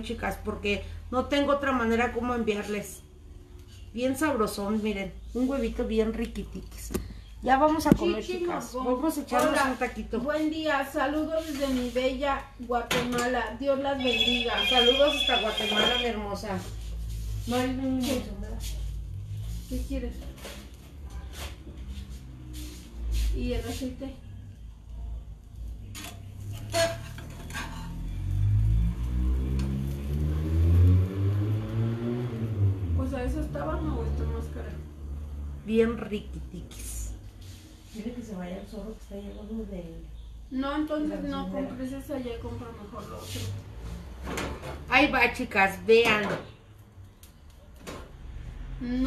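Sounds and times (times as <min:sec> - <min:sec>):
woman speaking: 0:00.0 - 0:03.1, 0:03.9 - 0:16.8, 0:17.4 - 0:18.8, 0:19.6 - 0:20.4, 0:23.4 - 0:24.4, 0:33.0 - 0:34.9, 0:35.6 - 0:37.2, 0:37.9 - 0:43.6, 0:44.9 - 0:46.5, 0:48.8 - 0:49.0.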